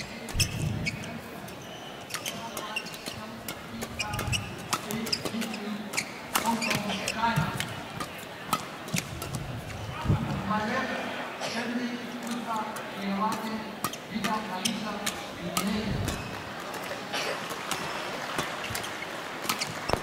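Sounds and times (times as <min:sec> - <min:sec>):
shoe squeaks on court: 0:00.0 - 0:03.2, 0:03.9 - 0:07.6, 0:18.6 - 0:20.0.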